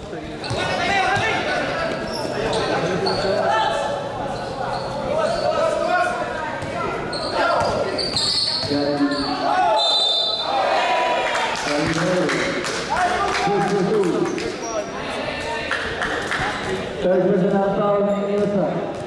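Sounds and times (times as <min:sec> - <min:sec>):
shouting and chatter: 0:00.4 - 0:17.1.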